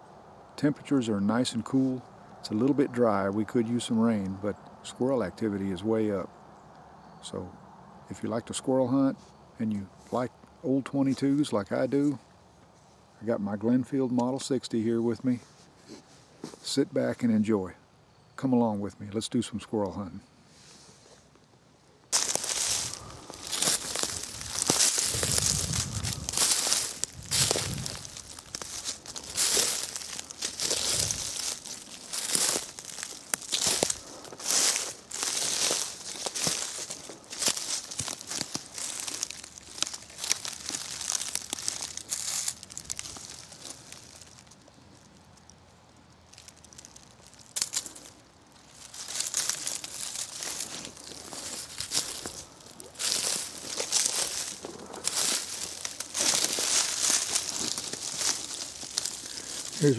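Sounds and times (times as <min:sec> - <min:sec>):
footsteps crunching dry leaves: 0:22.1 - 0:59.9.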